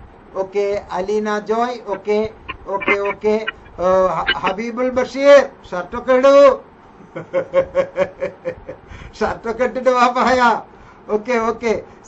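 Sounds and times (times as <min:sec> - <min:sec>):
person laughing in short bursts: 0:02.5 - 0:03.6.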